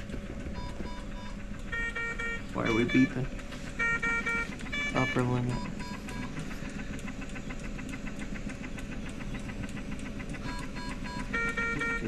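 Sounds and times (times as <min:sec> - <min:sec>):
jet ventilator rapid ticks: 0:00.0 - 0:12.0.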